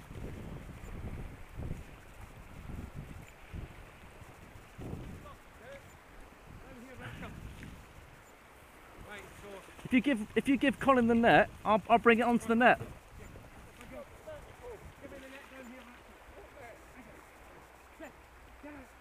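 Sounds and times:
wind buffeting microphone: 0.0 - 15.3
river water flowing: 0.0 - 19.0.

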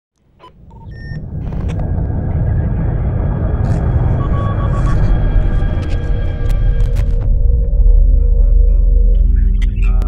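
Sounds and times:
deep rumble: 0.4 - 10.0
static glitch noise: 3.4 - 7.3.

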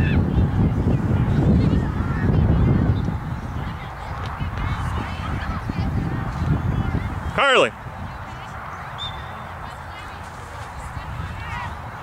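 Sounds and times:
wind rumble on microphone: 0.0 - 12.0.

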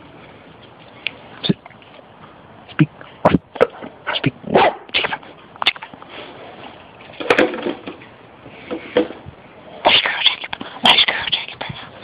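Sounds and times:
plastic bottle clattering on concrete: 7.2 - 8.0.

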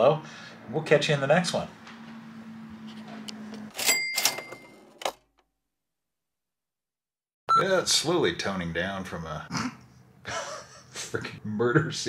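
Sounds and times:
cash register ka-ching: 3.7 - 5.2.

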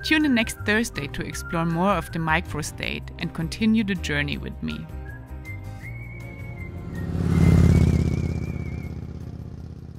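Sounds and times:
motorcycle engine: 5.7 - 9.9.

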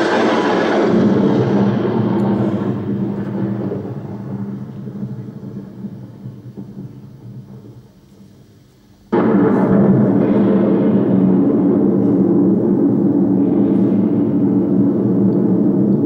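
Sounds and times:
deep rumbling sound effect: 0.0 - 8.5, 9.1 - 16.0.

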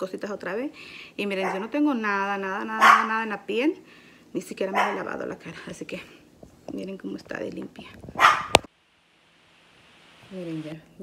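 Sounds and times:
faint hiss: 8.6 - 11.0.

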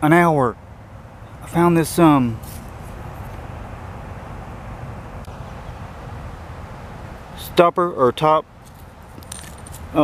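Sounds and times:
low outdoor background rumble: 0.0 - 10.0.

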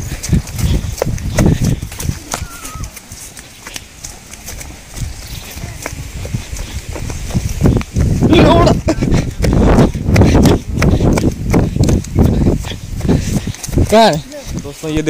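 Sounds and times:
footsteps running on dirt path: 0.0 - 15.0.

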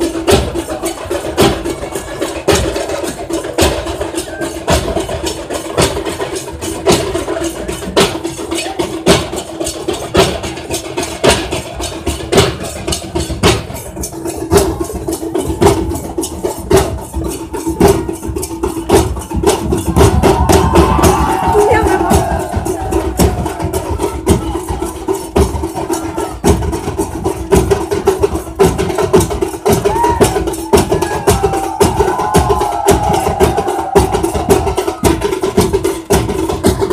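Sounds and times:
barrel drums beaten with sticks: 0.0 - 36.9.

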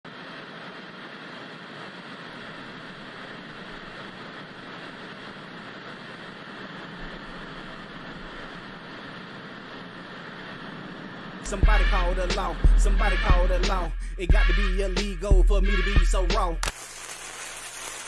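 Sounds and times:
television static hiss: 0.0 - 13.9, 15.1 - 18.0.

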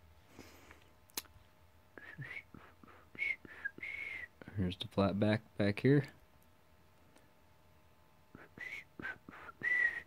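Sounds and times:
person whistling quick notes: 2.0 - 4.3, 8.4 - 10.0.

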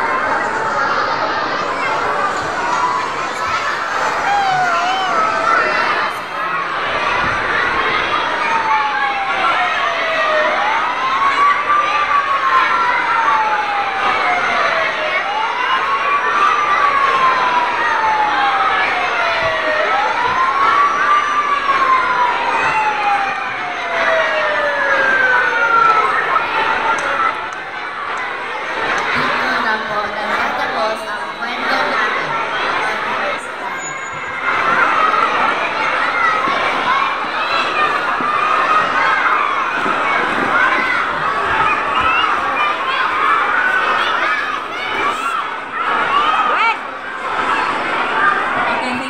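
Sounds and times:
siren wailing: 0.0 - 48.6
crowd chattering and cheering: 0.0 - 49.0.

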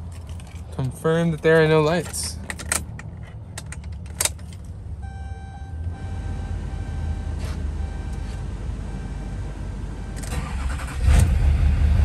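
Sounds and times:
keys clicking in ignition: 0.0 - 4.7
low steady hum: 0.1 - 10.3.

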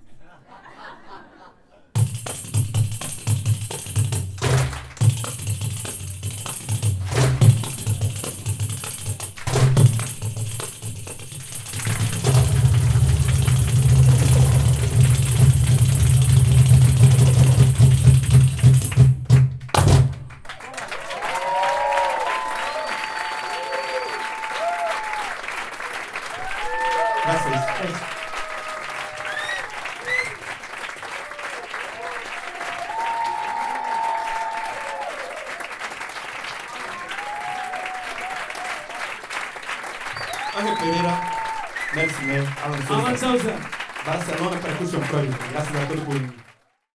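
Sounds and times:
tambourine: 2.0 - 4.2, 5.1 - 12.7
deep pounding drum: 2.0 - 20.3
percussion ensemble playing: 2.0 - 20.4, 26.3 - 30.1, 40.0 - 46.2
audience applause and cheering: 4.4 - 5.2, 11.4 - 46.9.

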